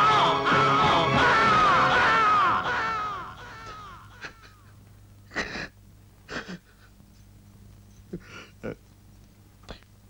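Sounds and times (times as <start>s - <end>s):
mournful film score melody: 0.0s - 4.4s.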